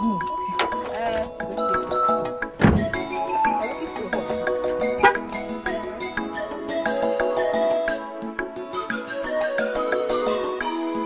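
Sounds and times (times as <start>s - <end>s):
background music: 0.0s - 11.0s
car door slamming: 0.5s - 3.2s.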